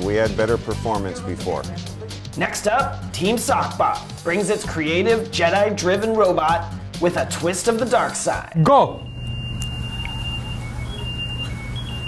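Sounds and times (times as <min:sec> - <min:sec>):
high electronic beep tune: 0:09.0 - 0:12.0.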